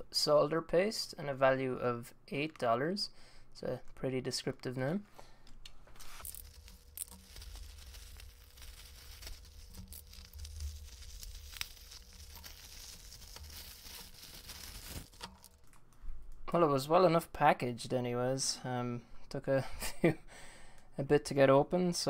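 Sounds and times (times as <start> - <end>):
plastic crinkling and tearing: 6.0 - 15.8.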